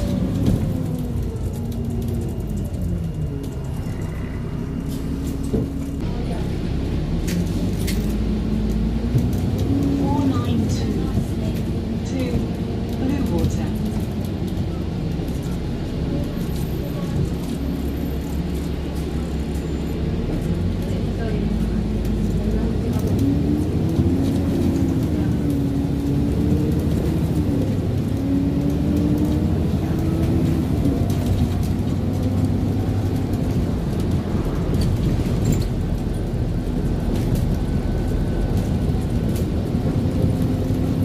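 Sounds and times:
bus engine rumble: 0.0s - 41.0s.

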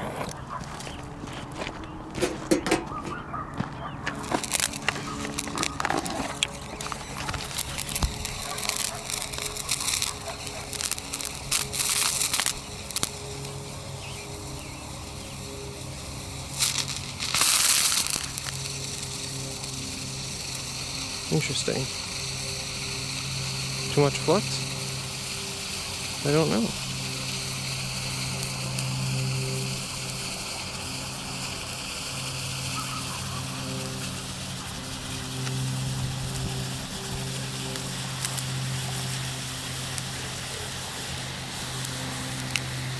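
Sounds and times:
thermite burning with crackles: 0.0s - 42.9s
hissing flare-ups: 4.1s - 42.9s.

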